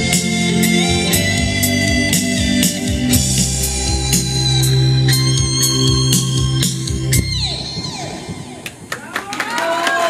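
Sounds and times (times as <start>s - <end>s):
electric guitar lead: 0.0s - 8.9s
organ-toned keyboard: 0.0s - 8.9s.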